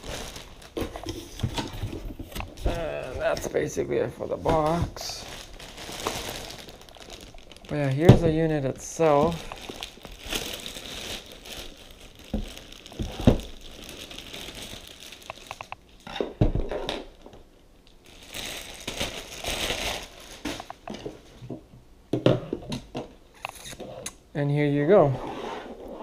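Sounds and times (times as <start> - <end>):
plastic bag crinkling: 0.0 - 16.0, 18.0 - 21.3.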